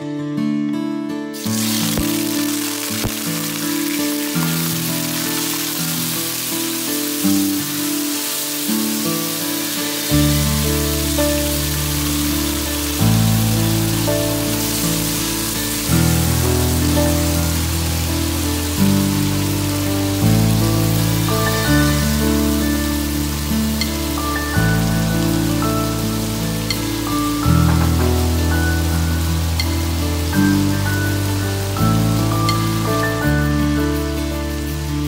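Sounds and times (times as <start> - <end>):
slow background music with bass: 0.0 - 35.0
chicken sizzling in oil: 1.4 - 35.0.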